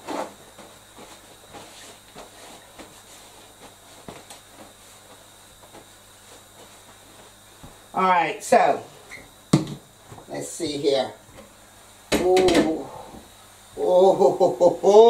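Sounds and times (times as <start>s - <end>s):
steady low hiss: 0.0s - 15.0s.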